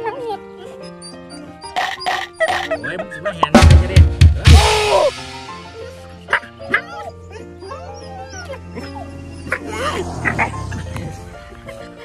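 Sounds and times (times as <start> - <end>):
dog whining and yipping: 0.0 - 3.3, 6.3 - 11.8
background music: 0.0 - 12.0.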